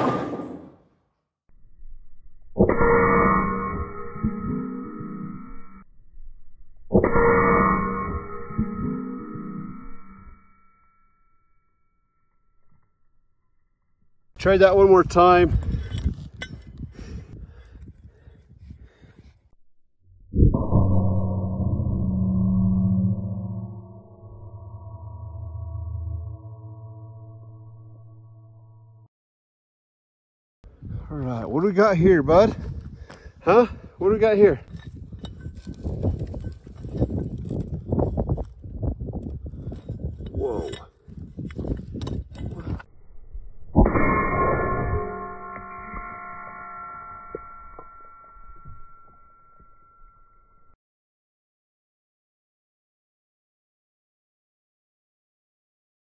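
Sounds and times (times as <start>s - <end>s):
low ringing hum: 1.5s - 15.0s, 19.8s - 29.1s, 39.6s - 50.8s
low wind rumble: 14.4s - 19.5s, 30.6s - 43.8s.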